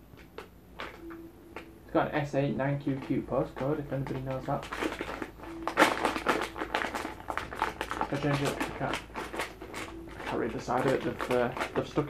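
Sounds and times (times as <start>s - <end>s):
plastic bag crinkling: 2.7s - 12.0s.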